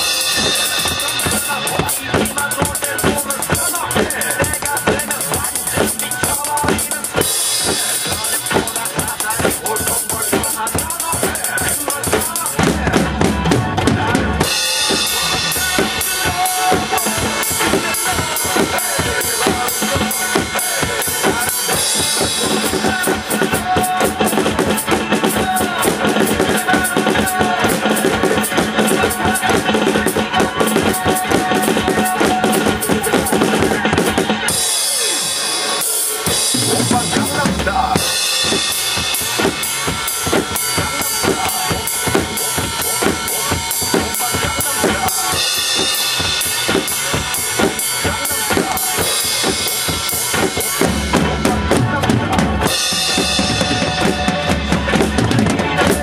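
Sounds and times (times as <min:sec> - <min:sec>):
acoustic drum kit dance beat: 0:00.0 - 0:56.0
pop backing track: 0:00.0 - 0:56.0.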